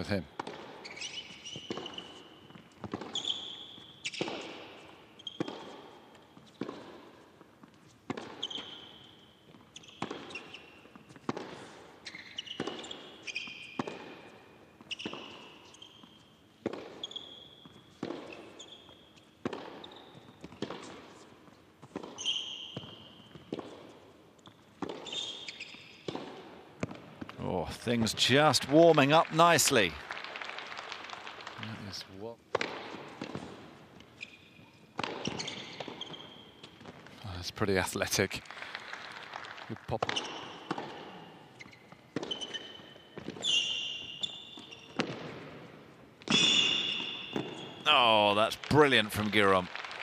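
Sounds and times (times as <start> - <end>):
shoe squeaks on court: 0.0 - 6.9, 7.6 - 26.2, 33.2 - 37.0, 40.0 - 45.4, 46.2 - 47.9
tennis ball racket hits: 0.4 - 27.4, 32.5 - 34.3, 34.9 - 37.1, 40.0 - 48.3.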